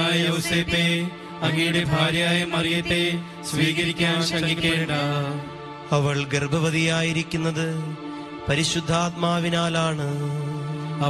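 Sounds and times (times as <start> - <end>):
drone-like accompaniment: 0.0 - 11.0
person chanting a prayer: 0.0 - 11.0.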